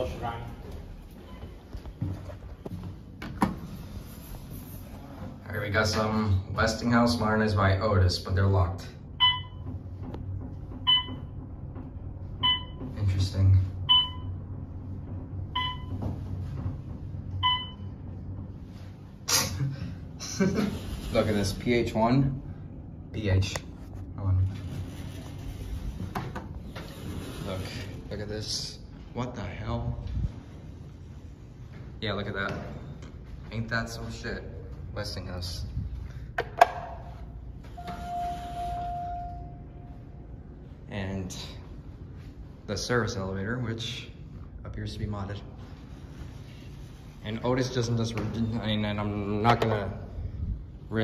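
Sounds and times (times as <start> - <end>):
elevator car low hum: 0.0 - 36.3, 37.0 - 47.2
elevator beeps: 1.1 - 1.7, 9.1 - 16.6, 17.3 - 18.4, 37.6 - 40.4.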